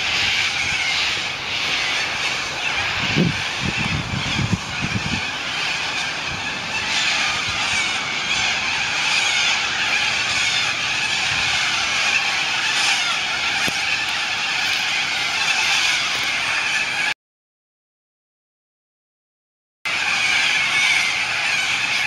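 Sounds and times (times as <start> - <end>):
flock of cockatoos calling: 0.0 - 17.2, 19.9 - 22.0.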